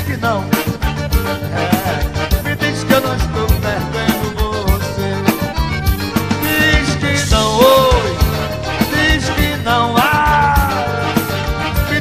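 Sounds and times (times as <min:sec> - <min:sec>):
piano accordion melody: 0:00.0 - 0:12.0
steady low drum beat: 0:00.0 - 0:12.0.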